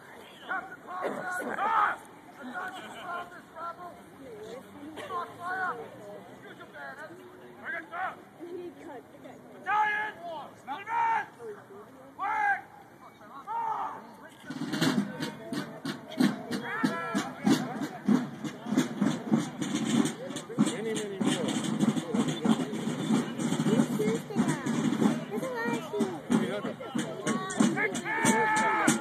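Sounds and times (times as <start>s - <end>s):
people shouting calls: 0.0s - 3.9s, 7.6s - 8.3s, 9.6s - 11.5s, 12.1s - 29.0s
crowd chatter: 0.0s - 29.0s.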